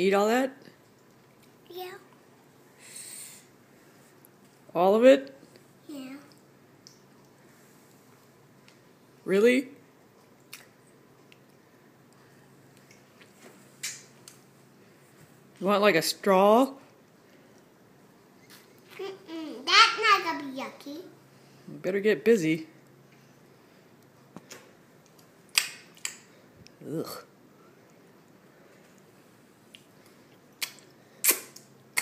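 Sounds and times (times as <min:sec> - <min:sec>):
sharp wet smack: 0:25.5 - 0:26.2, 0:30.6 - 0:32.0
child licking fingers: 0:30.6 - 0:32.0
faint mouth clicks: 0:30.6 - 0:32.0.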